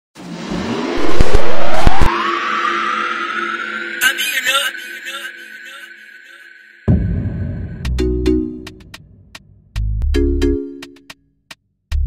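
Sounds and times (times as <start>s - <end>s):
whoosh rising in pitch: 0.2s - 4.1s
low drone: 0.2s - 8.2s
loud boom with sharp cracks: 6.9s - 7.9s.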